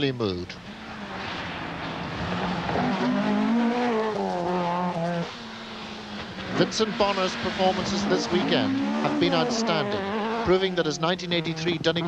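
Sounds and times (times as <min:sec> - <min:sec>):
car engine accelerating hard: 0:00.6 - 0:12.0.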